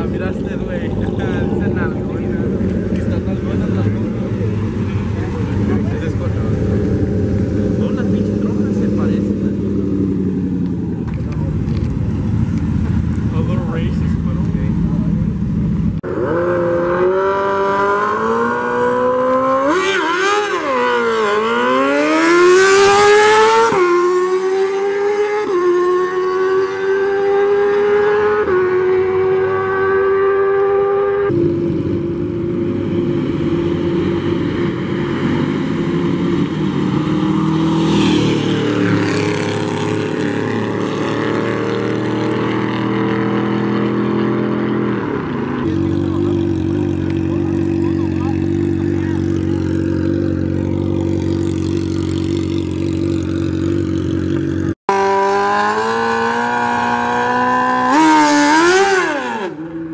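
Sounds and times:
car engine accelerating: 0.0s - 59.9s.

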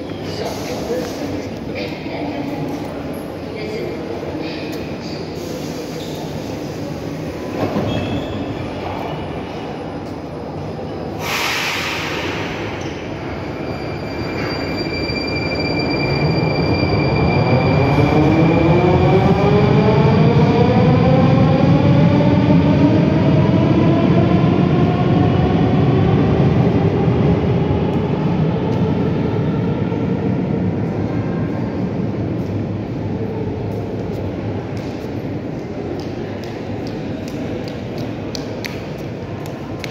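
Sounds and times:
air hiss: 11.2s - 12.5s.

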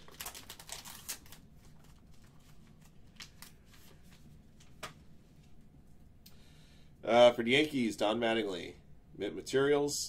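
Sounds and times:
card sleeves crinkling and clicking: 0.0s - 5.6s.

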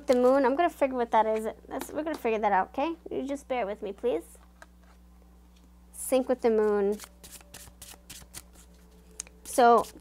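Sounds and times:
cards being shuffled: 6.6s - 10.0s.

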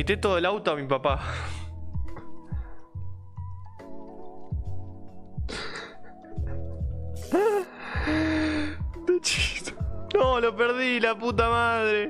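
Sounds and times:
background music beat with kick drum: 1.1s - 12.0s
man laughing: 5.5s - 8.2s.

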